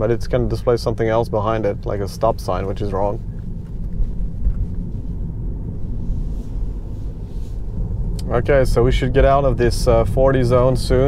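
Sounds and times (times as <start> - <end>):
road and tyre rumble in car cabin: 0.0 - 11.0.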